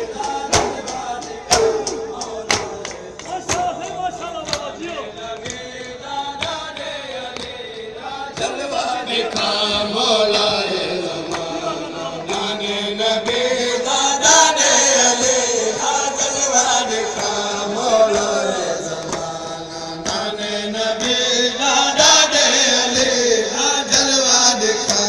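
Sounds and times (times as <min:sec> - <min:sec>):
men chanting a lament: 0:00.0 - 0:25.0
chest-beating slaps: 0:00.2 - 0:03.8.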